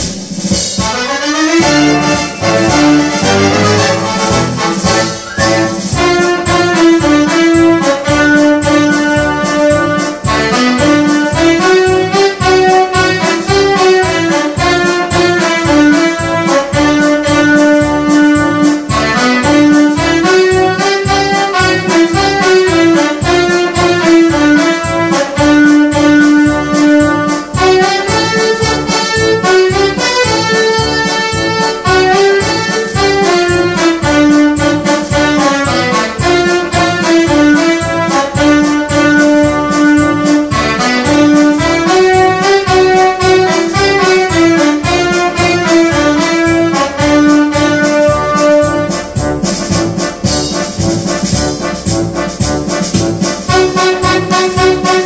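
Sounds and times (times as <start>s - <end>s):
electronic keyboard melody: 1.3s - 55.0s.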